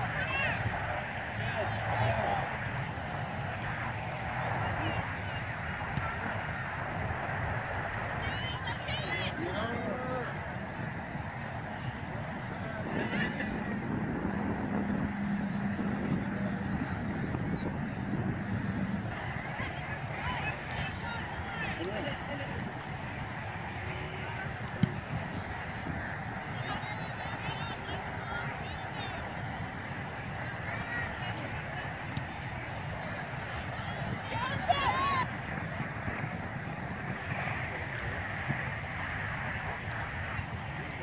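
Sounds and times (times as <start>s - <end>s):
steady low rumble: 0.0s - 41.0s.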